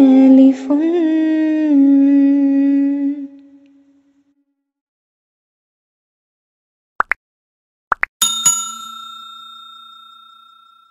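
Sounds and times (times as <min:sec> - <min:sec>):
bright bell ding: 0:08.2 - 0:10.9.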